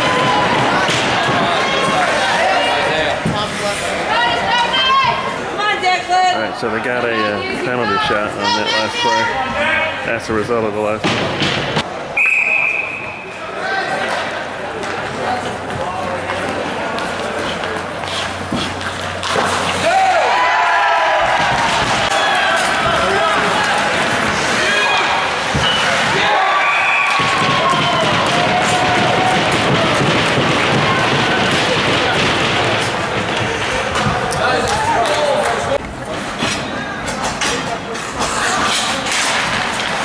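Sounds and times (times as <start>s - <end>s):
hockey sticks and pucks clacking: 0.0s - 4.3s, 13.9s - 20.3s, 21.0s - 40.0s
spectators shouting and cheering: 0.0s - 10.0s, 19.4s - 36.0s.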